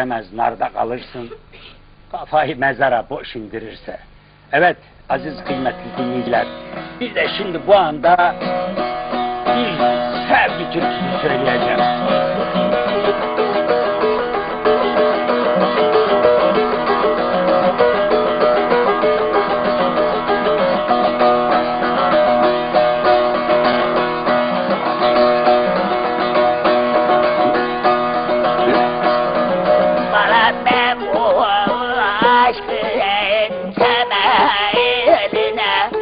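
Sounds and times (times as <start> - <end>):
long-necked lute plucked: 5.2 - 36.0
person singing: 29.7 - 36.0.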